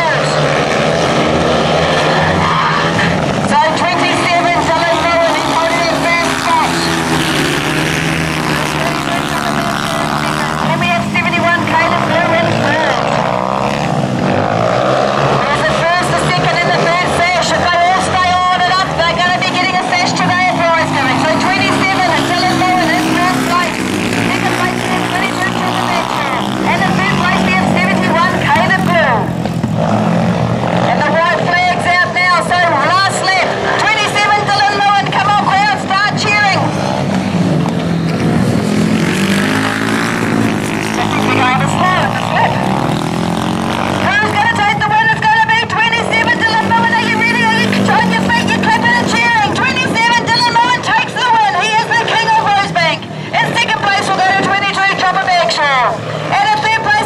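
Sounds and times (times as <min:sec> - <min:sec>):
motorcycle engines racing: 0:00.0 - 0:57.0.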